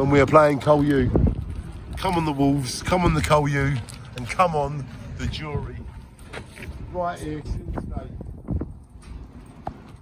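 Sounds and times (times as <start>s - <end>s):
footsteps on hard pavement: 0.0s - 10.0s
low outdoor rumble: 0.0s - 10.0s.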